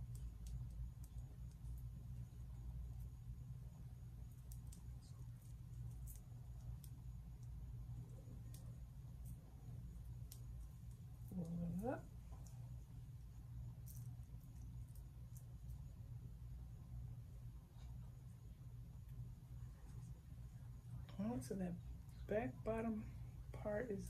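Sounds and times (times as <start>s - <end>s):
clicks and rustles of fingers: 0.0s - 1.8s
low hum: 0.0s - 24.0s.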